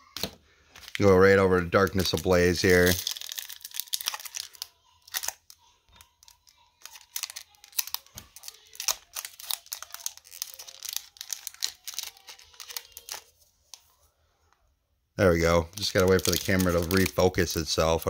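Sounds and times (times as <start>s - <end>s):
foil wrapper tearing and crinkling: 0.8s - 13.3s, 15.8s - 17.7s.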